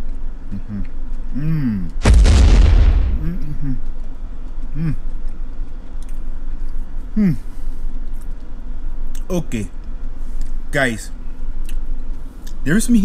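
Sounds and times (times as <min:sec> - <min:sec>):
man humming while chewing: 0:00.5 - 0:02.0, 0:03.4 - 0:04.0, 0:04.7 - 0:05.1, 0:07.1 - 0:07.5
sudden loud burst of noise: 0:02.0 - 0:03.6.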